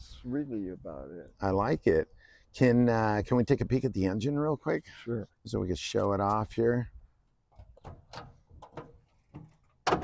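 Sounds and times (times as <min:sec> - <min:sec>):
engine lid latch clicks and knocks: 0:07.6 - 0:10.0.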